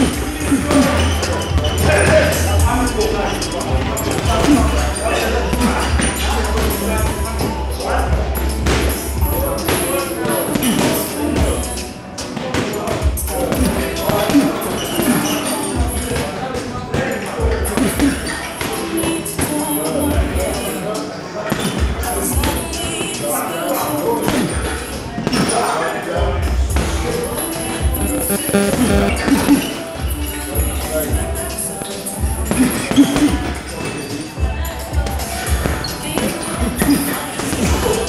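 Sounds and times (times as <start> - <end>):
background music: 0.0 - 14.8, 26.7 - 38.0.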